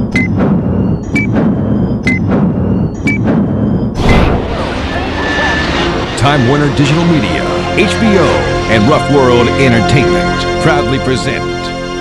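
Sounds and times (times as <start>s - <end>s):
loud rushing rumble: 0.0s - 10.4s
sudden impact hit: 0.4s - 7.8s.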